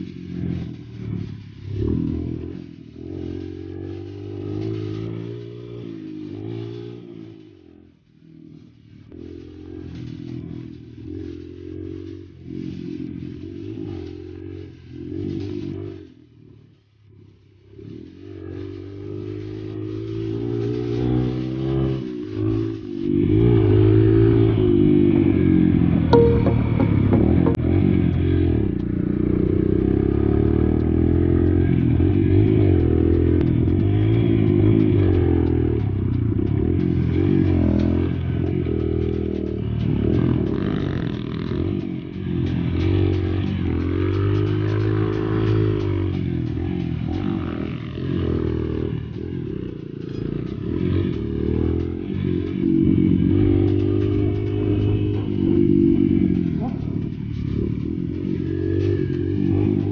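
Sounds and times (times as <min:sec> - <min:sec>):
dirt bike engine revving: 0:00.0 - 0:59.9.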